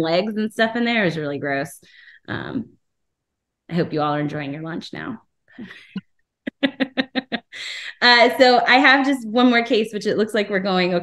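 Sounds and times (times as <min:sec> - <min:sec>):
woman laughing: 0:05.6 - 0:08.0.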